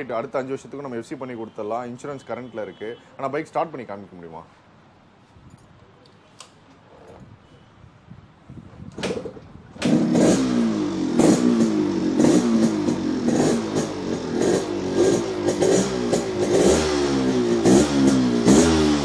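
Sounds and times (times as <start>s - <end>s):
two-stroke motorcycle engine revving: 9.8s - 19.0s.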